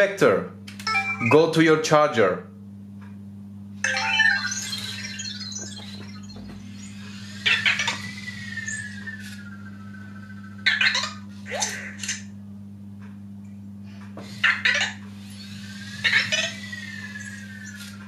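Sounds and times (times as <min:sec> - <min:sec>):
robot electronic chirps and beeps: 0:03.8 - 0:11.3.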